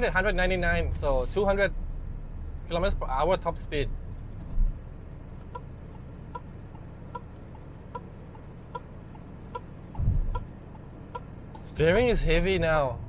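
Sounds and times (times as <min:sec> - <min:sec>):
car engine and road hum: 0:00.0 - 0:13.0
turn signal ticking: 0:05.3 - 0:11.8.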